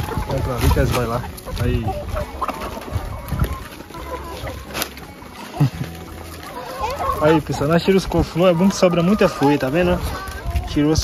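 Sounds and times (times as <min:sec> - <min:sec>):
hens clucking: 0:00.0 - 0:11.0.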